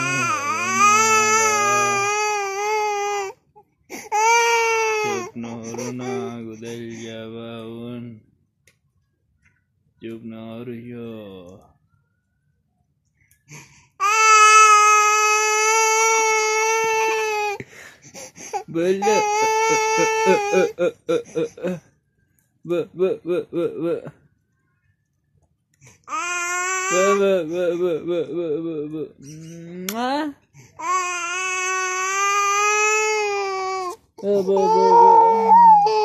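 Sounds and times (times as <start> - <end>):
toddler crying: 0.0 - 3.3, 4.1 - 6.4, 19.0 - 20.8, 30.8 - 36.0.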